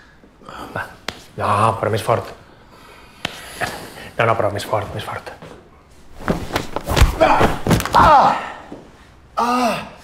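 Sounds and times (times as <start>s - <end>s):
man grunting: 7.2s - 8.7s.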